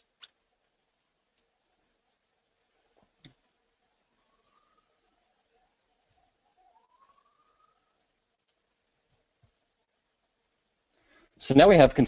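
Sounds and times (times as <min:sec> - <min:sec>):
faint rising tone: 0:04.0 - 0:08.3.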